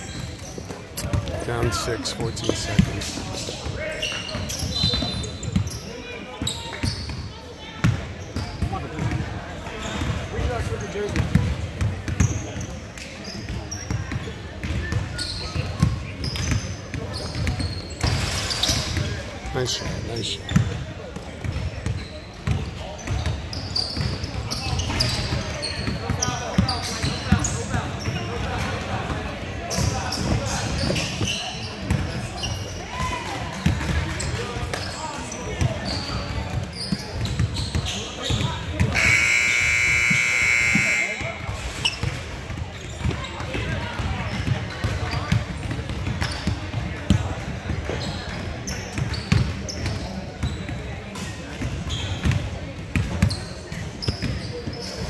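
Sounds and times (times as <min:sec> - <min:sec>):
people talking and shouting: 0:00.0 - 0:55.0
basketballs bouncing on hardwood: 0:14.2 - 0:15.0
scoreboard buzzer: 0:38.9 - 0:41.4.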